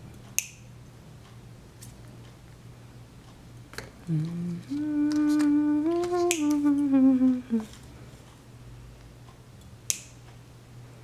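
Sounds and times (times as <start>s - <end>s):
person humming: 3.9s - 7.8s.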